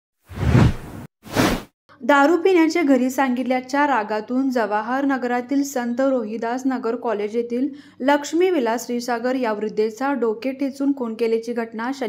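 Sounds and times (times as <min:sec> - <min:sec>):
whoosh sound effects: 0:00.3 - 0:01.7.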